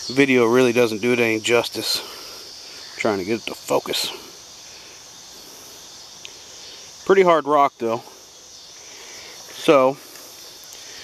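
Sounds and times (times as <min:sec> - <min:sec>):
insects buzzing: 0:00.0 - 0:11.0.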